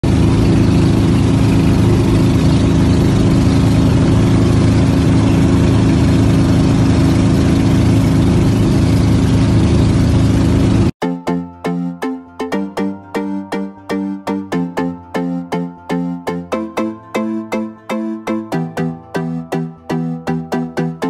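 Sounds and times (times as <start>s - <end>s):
boat engine drone: 0.0s - 21.0s.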